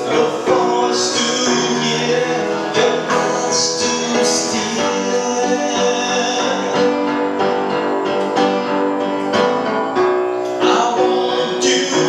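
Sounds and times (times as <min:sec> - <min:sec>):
man singing: 0:00.0 - 0:07.2, 0:10.6 - 0:12.0
piano chords: 0:00.0 - 0:12.0.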